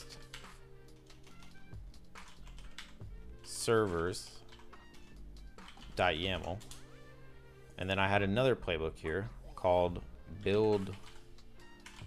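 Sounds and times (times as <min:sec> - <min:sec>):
keyboard typing: 0:00.0 - 0:03.2, 0:03.8 - 0:07.0, 0:10.4 - 0:12.0
background music: 0:00.0 - 0:12.0.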